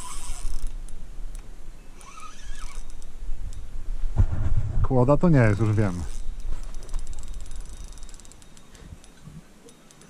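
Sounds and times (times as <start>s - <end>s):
fishing reel whirring: 0.0s - 0.9s, 1.9s - 3.6s, 5.5s - 10.0s
low rumble: 3.3s - 7.8s.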